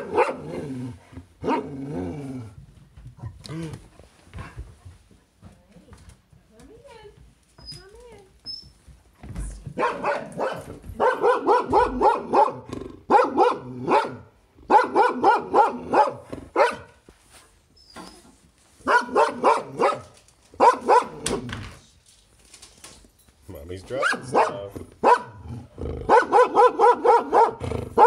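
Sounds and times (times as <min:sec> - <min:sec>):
dog barking: 0:00.0 - 0:00.6, 0:01.4 - 0:01.7, 0:09.8 - 0:17.0, 0:18.8 - 0:21.5, 0:24.0 - 0:25.4, 0:26.1 - 0:28.0.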